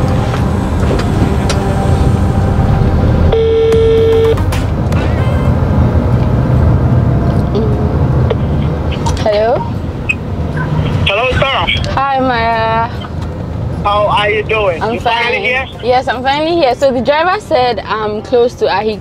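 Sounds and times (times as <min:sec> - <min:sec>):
car engine and road rumble: 0:00.0 - 0:19.0
phone call tone: 0:03.3 - 0:04.4
voice on phone speaker: 0:10.9 - 0:12.0, 0:13.8 - 0:16.0.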